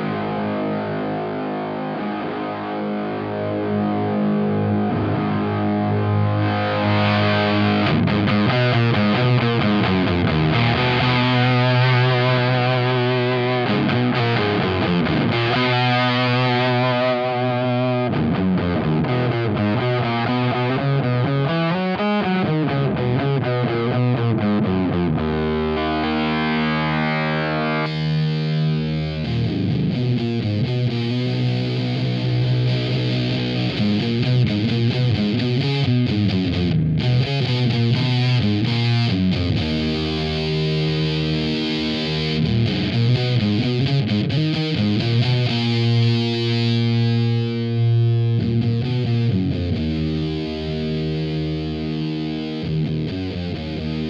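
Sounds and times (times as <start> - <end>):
fuzzed electric guitar chords: 0.0 - 54.0.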